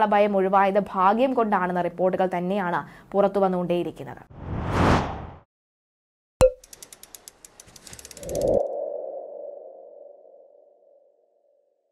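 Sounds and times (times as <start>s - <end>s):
whoosh: 4.3s - 5.4s
sharp ticks: 6.6s - 8.6s.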